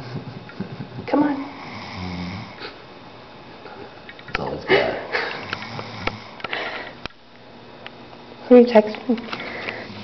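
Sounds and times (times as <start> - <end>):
man snoring: 1.5 - 2.7, 5.4 - 6.4.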